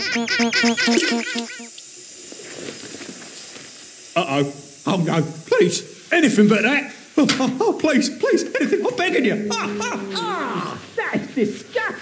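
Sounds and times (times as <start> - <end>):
room noise hiss: 0.0 - 12.0
soft rustles: 2.2 - 3.9.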